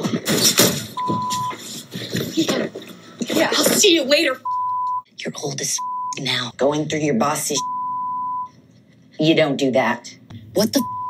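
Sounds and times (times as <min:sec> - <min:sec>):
censor bleep: 0:01.0 - 0:01.5, 0:04.4 - 0:05.0, 0:05.8 - 0:06.2, 0:07.6 - 0:08.5, 0:10.8 - 0:11.0.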